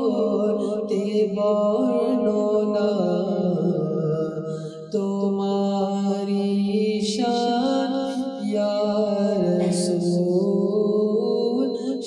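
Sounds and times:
man singing a hymn unaccompanied: 0.0 - 12.0.

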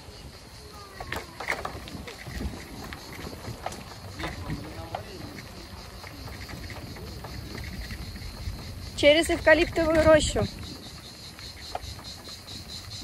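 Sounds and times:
low rumble of bicycle rolling: 0.0 - 13.0
wind on microphone: 0.0 - 13.0
bike rattles and clicks: 0.1 - 13.0.

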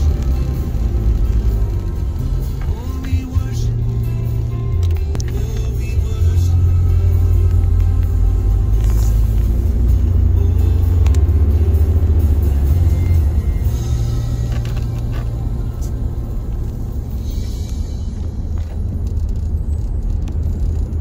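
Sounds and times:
bass-heavy music in a car: 0.0 - 21.0
car road and engine rumble: 0.0 - 21.0.

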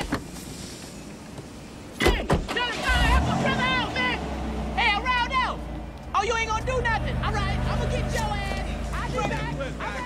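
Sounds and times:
car engine humming: 2.6 - 10.0.

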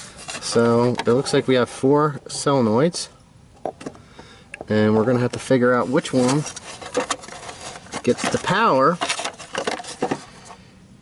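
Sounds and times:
plastic cover knocks and rattles: 6.9 - 10.3.

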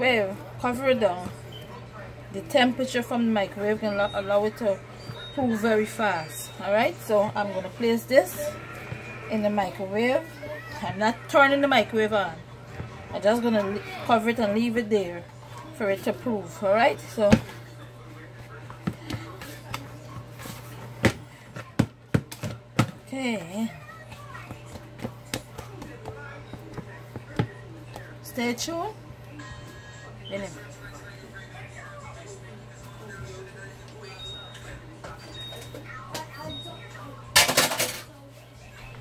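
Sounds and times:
dough kneading knocks and thumps: 20.9 - 28.2
kitchen items rattling: 35.2 - 38.2.

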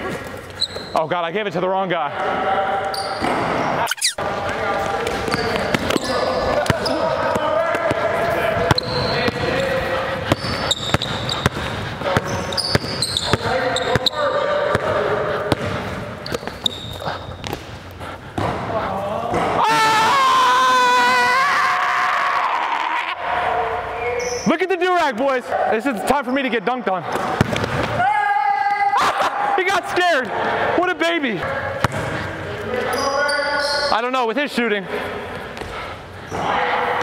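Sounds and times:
players' voices and calls: 0.0 - 20.2
basketball bouncing on gym floor: 4.5 - 17.8, 18.4 - 18.7, 27.2 - 28.0, 31.8 - 32.2.

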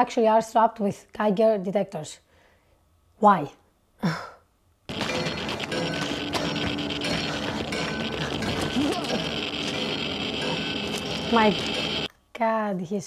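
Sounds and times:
geiger counter crackling: 4.9 - 12.1.

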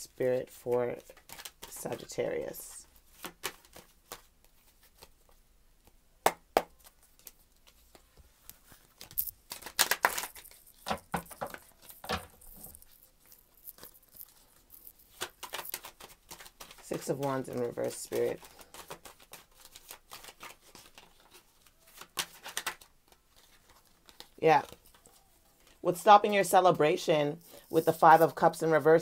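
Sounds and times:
cards being shuffled: 0.4 - 29.0.

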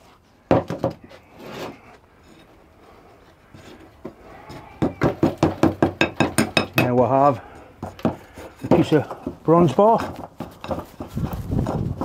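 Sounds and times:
steel rod knocking on mould: 4.8 - 7.0.

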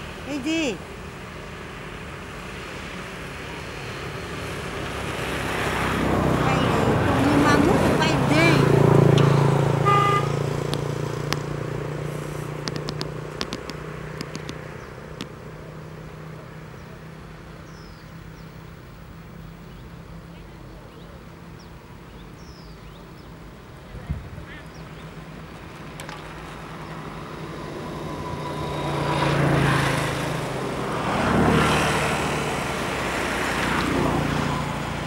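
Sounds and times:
voices: 0.0 - 0.9, 6.1 - 11.5, 23.7 - 27.4
motor vehicle passing: 0.0 - 35.0
short horn toot: 9.7 - 10.4
sharp clicks: 12.6 - 15.4.

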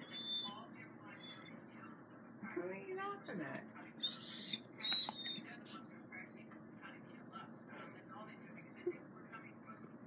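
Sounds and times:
dog squeaking: 0.0 - 0.5, 4.0 - 5.4.

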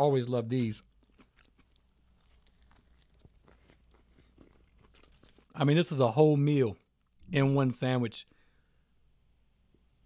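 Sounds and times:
chewing with crunches: 0.5 - 5.6.

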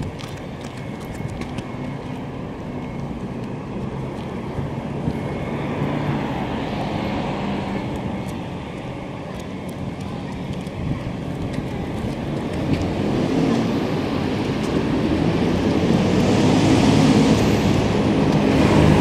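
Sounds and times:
low traffic hum: 0.0 - 19.0.

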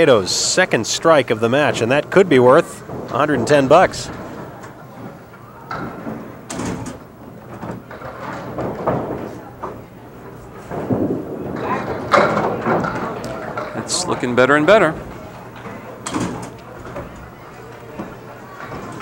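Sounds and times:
indistinct chatter: 0.0 - 19.0
knocks from bowling lanes: 5.7 - 9.9, 10.6 - 13.8.

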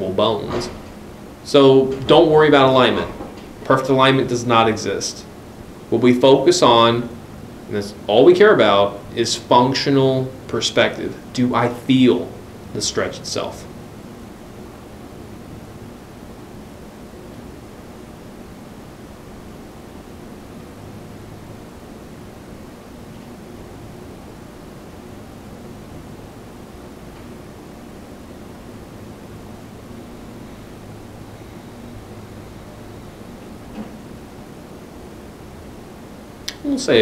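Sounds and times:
faint low hum: 0.0 - 37.0.

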